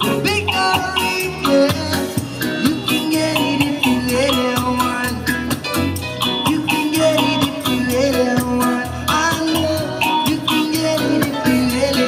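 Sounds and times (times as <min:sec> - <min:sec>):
hand percussion: 0:00.0 - 0:12.0
reggae guitar: 0:00.0 - 0:12.0.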